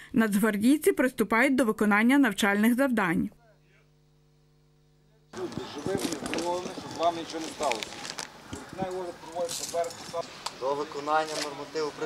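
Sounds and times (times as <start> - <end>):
faint steady hum: 0.0 - 12.0
man speaking: 5.3 - 7.8, 8.6 - 12.0.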